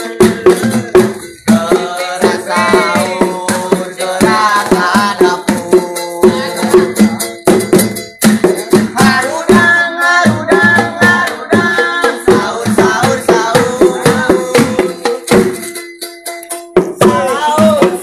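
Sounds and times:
person singing melody: 0.0s - 7.6s, 8.4s - 15.8s, 16.4s - 18.0s
hand percussion and rattles: 0.0s - 18.0s.

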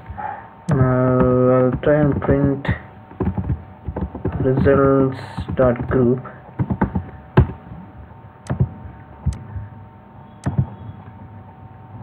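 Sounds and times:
computer keyboard keystrokes: 0.7s - 7.6s, 8.4s - 9.4s, 10.4s - 10.7s.

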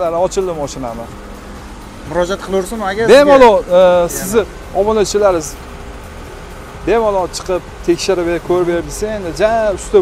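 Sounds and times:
person speaking: 2.1s - 4.7s.

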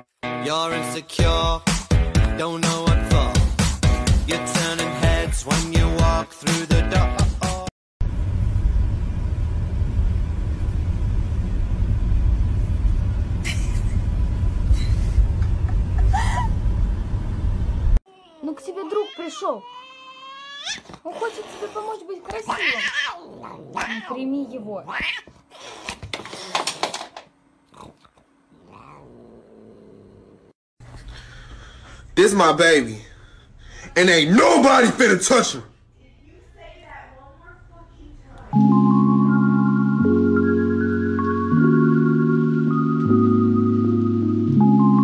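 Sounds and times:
cat yowling: 18.7s - 20.8s, 22.4s - 25.3s, 28.6s - 29.8s
cat growling: 20.6s - 26.0s, 27.7s - 30.6s.

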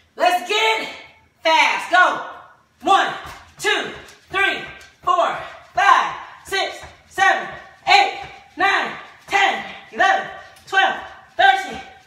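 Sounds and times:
woman counting aloud: 0.2s - 12.0s.

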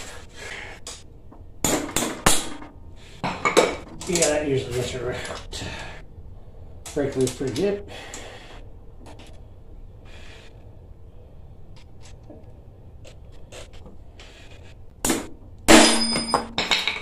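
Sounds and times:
metal knock and ringing clank: 15.7s - 17.0s.

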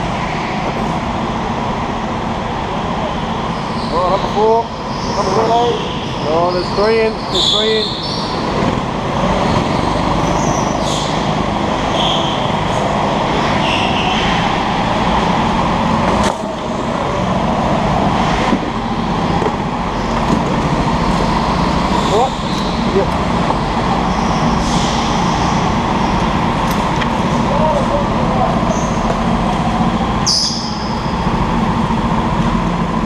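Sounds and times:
go-kart engines running: 0.0s - 33.0s.

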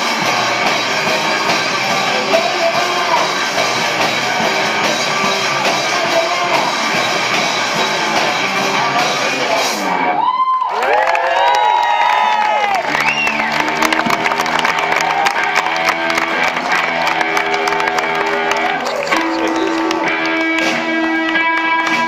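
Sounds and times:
live rock band playing: 0.0s - 10.3s, 11.8s - 22.0s
audience cheering and whooping: 10.0s - 22.0s
scattered clapping: 10.7s - 22.0s
held electric guitar notes: 12.8s - 22.0s.

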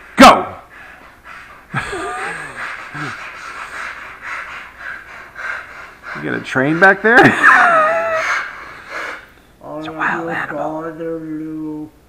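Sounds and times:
woman stifled laughing: 1.7s - 3.2s, 7.2s - 8.4s.

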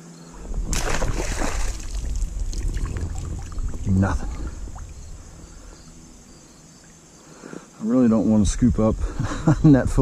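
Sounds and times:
high-pitched insect drone: 0.0s - 9.7s.

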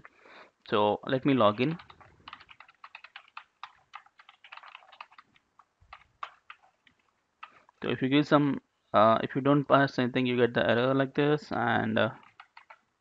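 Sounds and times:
typing on computer keyboard: 1.6s - 7.6s, 12.2s - 12.8s.

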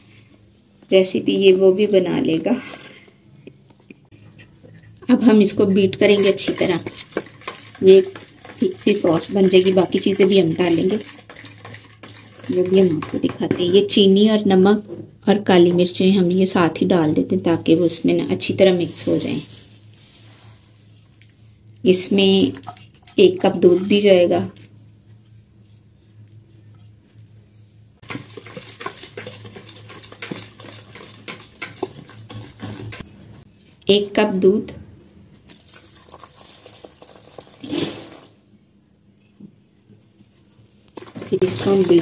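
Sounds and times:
sugar pouring hiss: 35.5s - 39.8s.

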